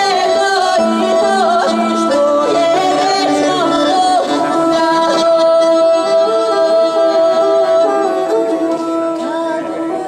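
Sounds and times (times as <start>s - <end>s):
accordion: 0.0s - 10.0s
cello: 0.0s - 10.0s
woman singing folk melody: 0.0s - 10.0s.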